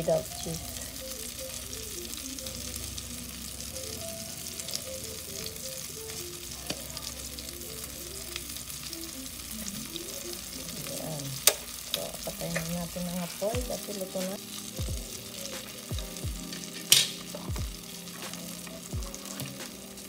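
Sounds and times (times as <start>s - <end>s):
food sizzling in oil: 0.0s - 20.0s.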